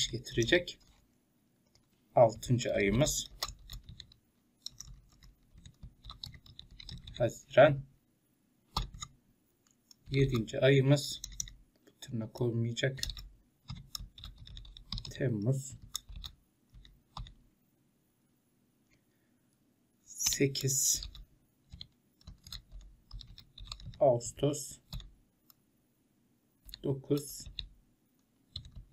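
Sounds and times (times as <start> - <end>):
keyboard keys clicking: 3.0 - 7.2, 13.0 - 17.4, 21.0 - 24.0, 28.5 - 28.9.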